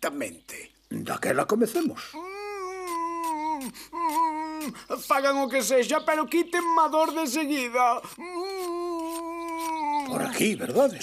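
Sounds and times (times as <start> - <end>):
cartoon voice humming: 2.2 - 4.8, 8.2 - 10.1.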